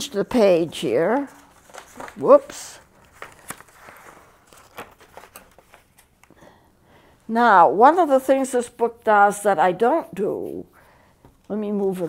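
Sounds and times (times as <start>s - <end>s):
paper rustling: 0.6s - 6.3s.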